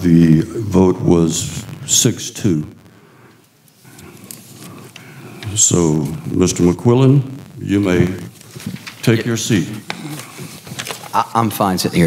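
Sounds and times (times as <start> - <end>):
faint rustling: 7.6 - 11.2.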